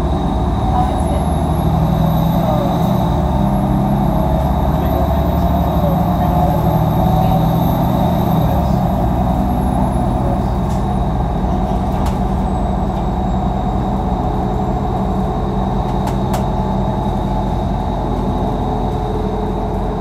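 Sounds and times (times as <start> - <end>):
bus engine and road drone: 0.0 - 20.0.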